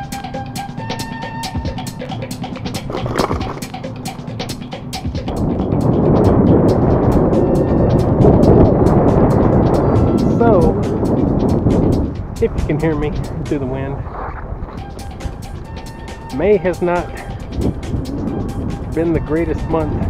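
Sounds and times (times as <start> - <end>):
music with drum beat: 0.0 - 13.7, 14.8 - 20.0
wind rushing over microphone: 2.5 - 20.0.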